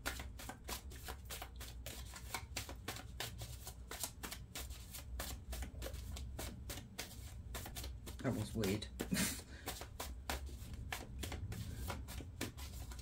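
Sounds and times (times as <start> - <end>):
cards being shuffled: 0.0 - 13.0.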